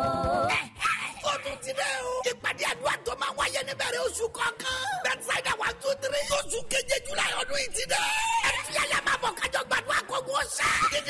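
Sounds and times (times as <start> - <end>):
person yelling: 0.5 - 11.0.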